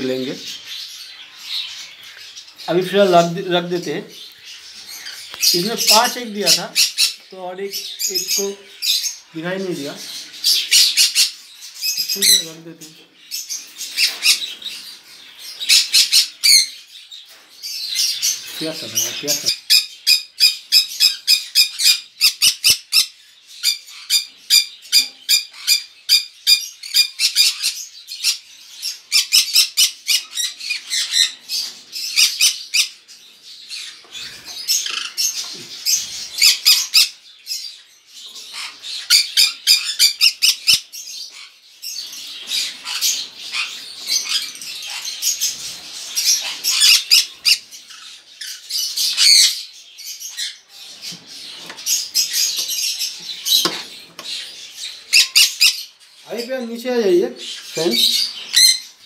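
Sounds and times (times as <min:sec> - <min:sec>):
parrots squawking: 0:00.0 - 0:17.1, 0:17.8 - 0:33.1, 0:33.7 - 0:59.0
parrots chattering: 0:00.0 - 0:59.0.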